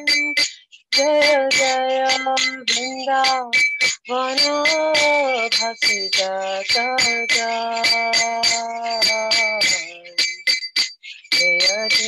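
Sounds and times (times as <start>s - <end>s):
person singing: 0.0s - 10.4s, 11.3s - 12.0s
hand cymbals struck: 0.0s - 12.0s.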